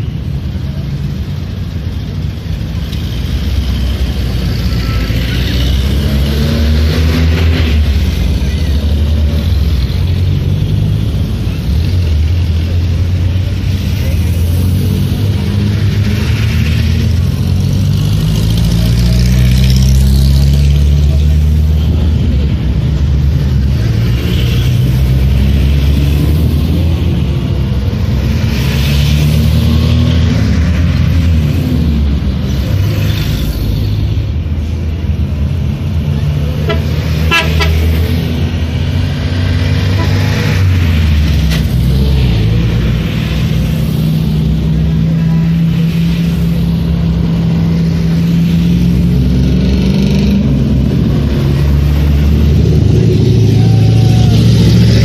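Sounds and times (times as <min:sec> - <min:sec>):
car engines driving past: 0:00.0 - 0:55.0
crowd chattering: 0:00.0 - 0:55.0.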